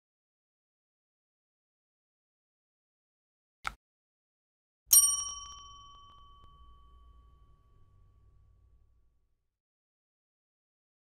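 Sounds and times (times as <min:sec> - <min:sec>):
bell-like ding: 0:04.9 - 0:08.9.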